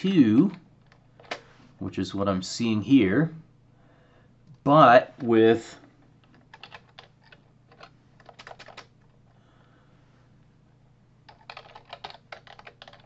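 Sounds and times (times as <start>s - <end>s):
keyboard typing clicks: 6.2s - 8.9s, 11.3s - 13.0s.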